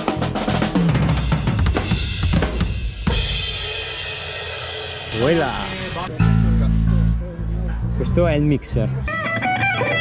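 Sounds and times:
drum kit roll: 0.0s - 6.1s
crash cymbal ringing: 3.1s - 6.1s.

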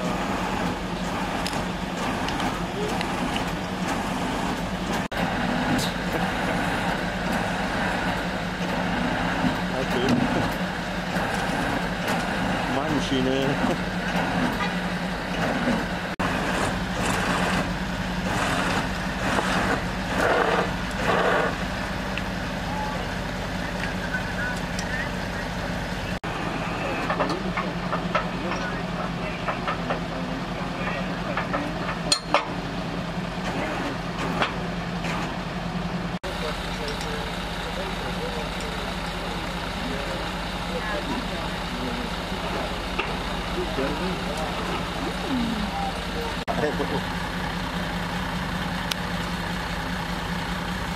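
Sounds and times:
truck engine idling: 0.0s - 50.9s
people talking: 2.5s - 3.7s, 9.6s - 10.5s, 12.4s - 13.8s, 22.6s - 32.2s, 33.4s - 34.0s, 36.2s - 47.1s.

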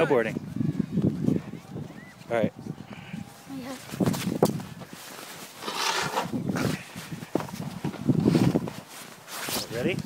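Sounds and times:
footsteps crunching in snow: 2.9s - 10.0s.

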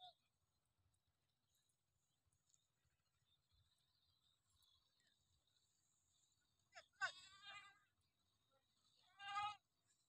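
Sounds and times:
goat bleating: 6.8s - 7.8s.

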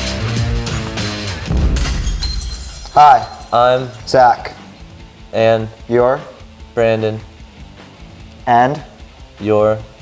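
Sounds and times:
rock music: 0.0s - 10.0s
glass shattering effect: 1.5s - 4.1s.

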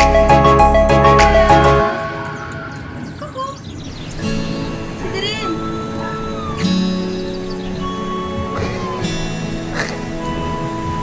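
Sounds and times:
background music with sustained notes: 0.0s - 11.0s
puppy squeaking: 5.4s - 6.8s, 7.6s - 9.1s.

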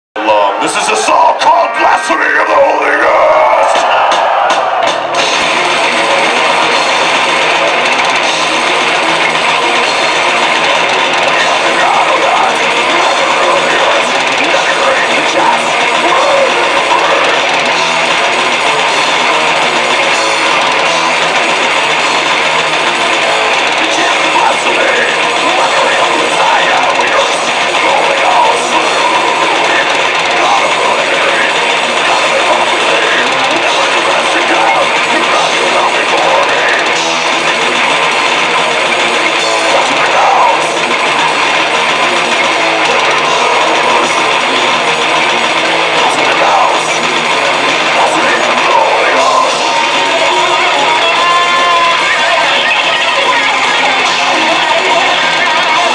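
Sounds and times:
death metal band playing live: 0.2s - 55.9s.

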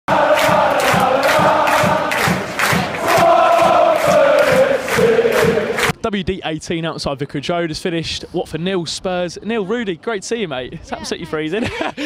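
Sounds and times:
crowd chanting in unison: 0.1s - 5.9s
steady beat: 0.1s - 6.0s.

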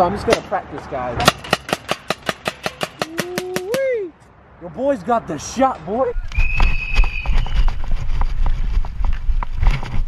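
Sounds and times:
paintball marker firing rapidly: 1.2s - 3.8s.

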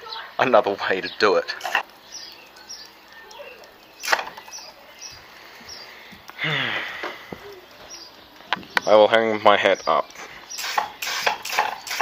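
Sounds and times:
faint bird chirps: 2.0s - 6.1s
person wordless vocal sound: 6.4s - 7.7s.

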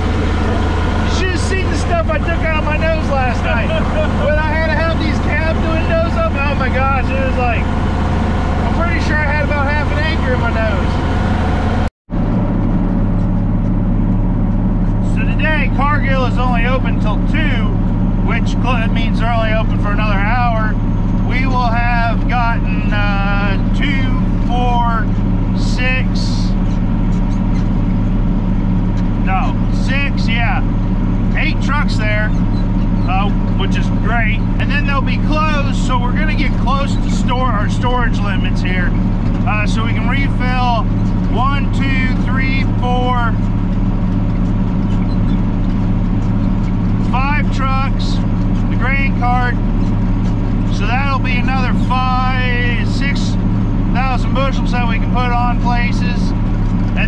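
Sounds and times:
tractor engine drone: 0.0s - 57.0s
man talking: 0.4s - 7.8s, 8.6s - 11.0s, 15.0s - 26.7s, 29.2s - 30.7s, 31.3s - 32.4s, 33.1s - 43.5s, 47.0s - 49.6s, 50.7s - 56.4s.

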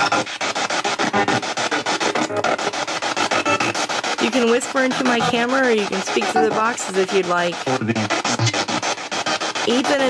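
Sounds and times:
radio sweeping through stations: 0.0s - 10.0s.

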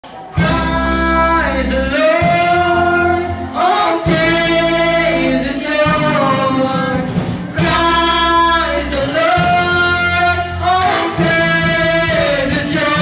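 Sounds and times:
live band playing: 0.0s - 13.0s
low bass notes: 0.3s - 13.0s
man and woman singing: 0.3s - 13.0s.

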